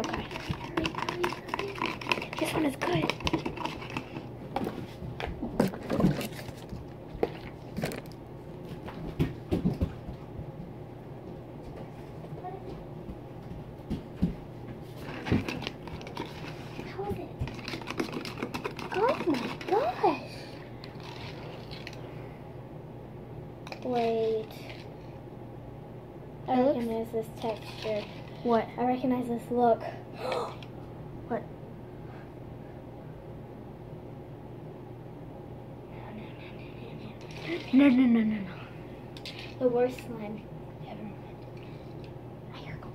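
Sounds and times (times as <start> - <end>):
girl speaking: 0.0 - 3.2, 12.4 - 12.8, 16.8 - 17.4, 18.9 - 20.5, 23.8 - 24.7, 26.4 - 30.6, 39.6 - 41.2, 42.5 - 42.9
spoon scraping glass jar: 0.0 - 4.2
girl gasping: 30.1 - 30.6.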